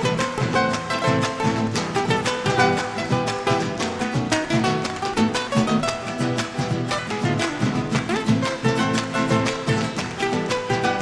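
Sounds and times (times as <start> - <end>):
guitar strummed and plucked: 0.0 - 11.0
harp: 0.0 - 11.0.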